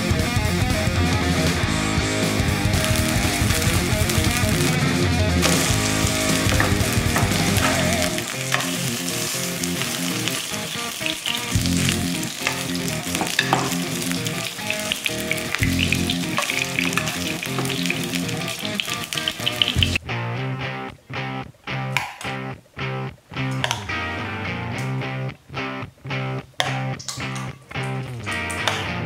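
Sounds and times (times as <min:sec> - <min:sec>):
guitar music: 0:00.0 - 0:29.0
steak sizzling in hot oil: 0:02.3 - 0:04.8, 0:05.4 - 0:20.0.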